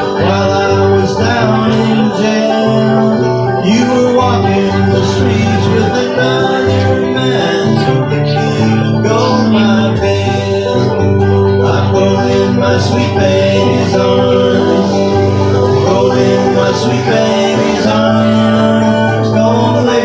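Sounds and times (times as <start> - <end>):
acoustic guitar strumming chords: 0.0 - 20.0
banjo picking: 0.0 - 20.0.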